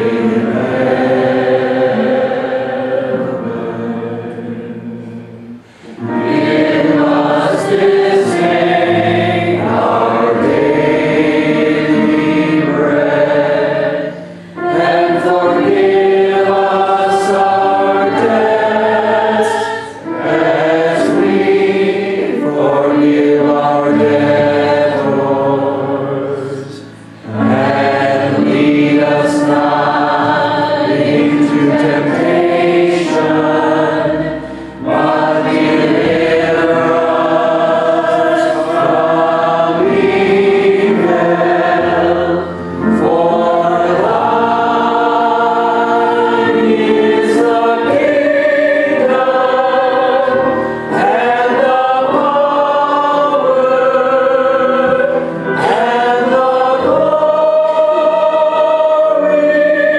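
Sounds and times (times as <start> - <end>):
congregation singing: 0.0 - 59.9.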